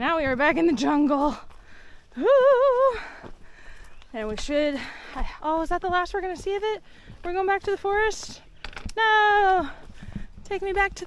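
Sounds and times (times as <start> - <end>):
person calling woo: 2.2 - 3.0.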